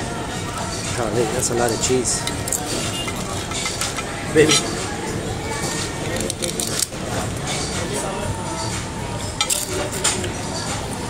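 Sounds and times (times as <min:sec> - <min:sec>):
steady background noise: 0:00.0 - 0:11.0
cutlery clinking on a plate: 0:02.4 - 0:04.8, 0:09.4 - 0:10.3.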